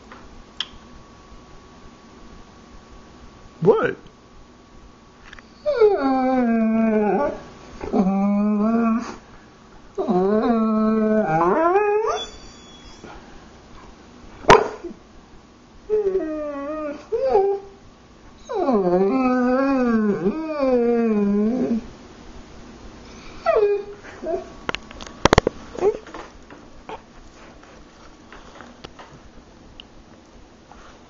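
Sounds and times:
dog whining howls: 5.5 - 9.2, 10.0 - 13.2, 15.9 - 17.8, 18.4 - 21.9, 23.4 - 24.5.

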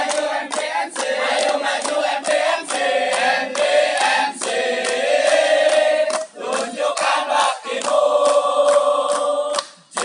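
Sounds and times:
group of voices chanting: 0.0 - 10.0
sharp percussive claps: 0.0 - 10.0.

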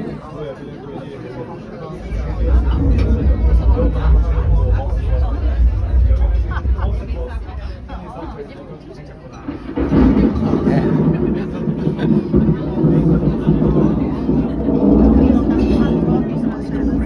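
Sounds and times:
deep thunder rumble: 2.0 - 8.6, 9.5 - 17.0.

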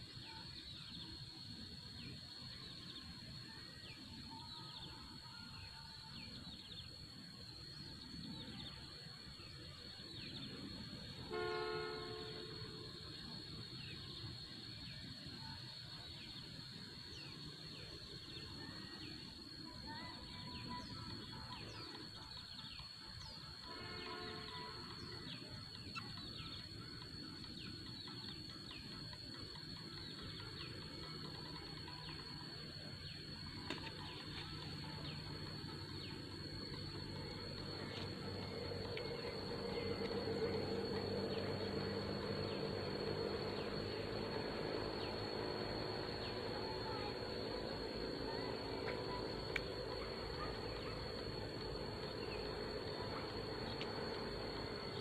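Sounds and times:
insect drone: 0.0 - 55.0
horn toots: 11.2 - 12.9, 23.6 - 24.9.

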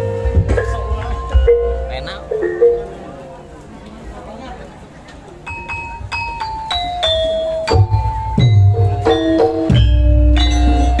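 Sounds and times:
metallophone ringing notes: 0.0 - 3.6, 5.4 - 11.0.

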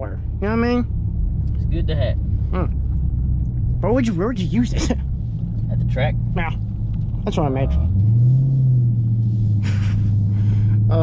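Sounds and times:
car engine drone from inside cabin: 0.0 - 11.0.

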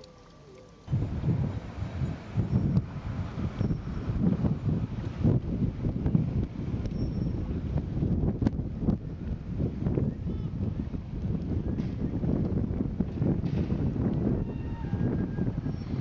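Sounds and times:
wind buffeting microphone: 0.9 - 16.0.

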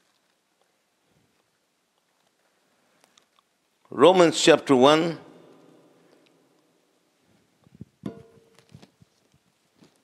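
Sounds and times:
faint handling sounds: 6.0 - 10.0
soft taps and rustles: 7.7 - 10.0
knock: 8.1 - 8.5.

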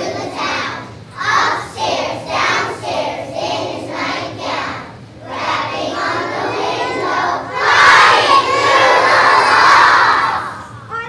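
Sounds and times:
children's voices: 0.0 - 11.0
children shouting together: 6.4 - 10.7.

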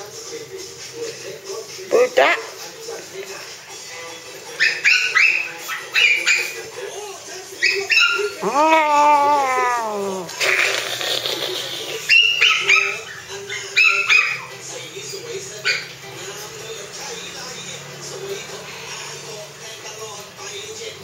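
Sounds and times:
small dog yipping: 4.6 - 6.6, 7.6 - 9.9, 12.1 - 14.5.

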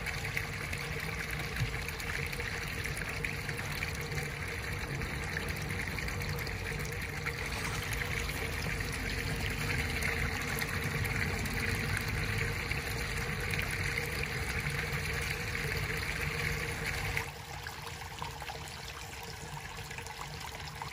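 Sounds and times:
water trickling into pond: 0.0 - 20.9.

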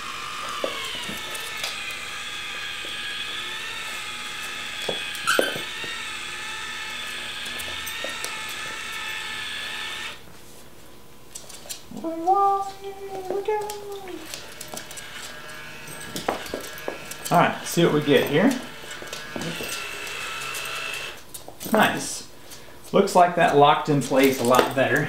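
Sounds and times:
electric gear motor whining: 0.0 - 10.2, 11.9 - 21.3.

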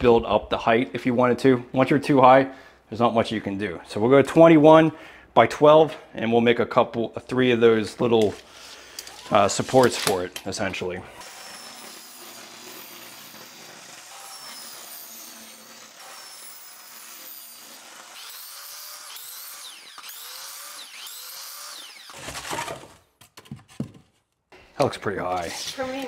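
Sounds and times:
table saw cutting foam: 9.0 - 23.1.

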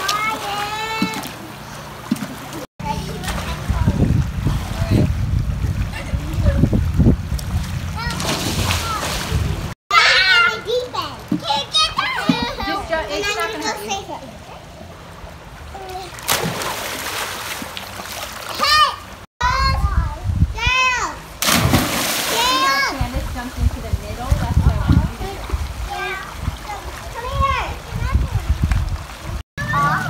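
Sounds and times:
water splashing: 0.0 - 9.8, 14.9 - 19.2, 21.3 - 30.0
children shouting: 9.9 - 12.8, 29.6 - 30.0.

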